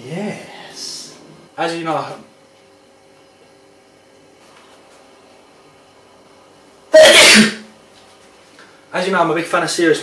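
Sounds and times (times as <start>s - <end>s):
person sneezing: 6.9s - 7.7s.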